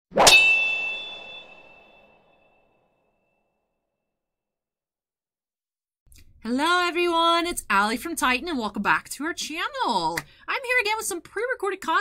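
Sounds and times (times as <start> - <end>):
metallic clang ringing: 0.2 - 2.4.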